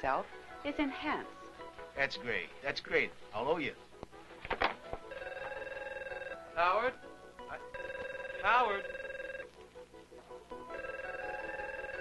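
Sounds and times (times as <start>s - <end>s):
desk telephone ringing: 5.0s - 6.8s, 7.4s - 9.5s, 10.7s - 12.0s.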